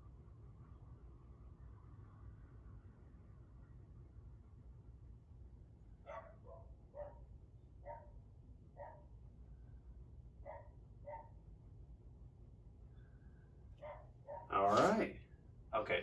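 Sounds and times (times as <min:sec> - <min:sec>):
low room hum: 0:00.0 - 0:16.0
faint dog barking: 0:06.0 - 0:09.2, 0:10.4 - 0:11.4, 0:13.8 - 0:15.0.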